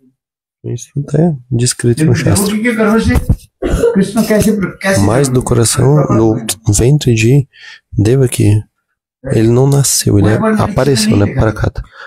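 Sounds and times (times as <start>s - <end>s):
man speaking: 0.6s - 12.0s
man clearing throat: 3.6s - 4.5s.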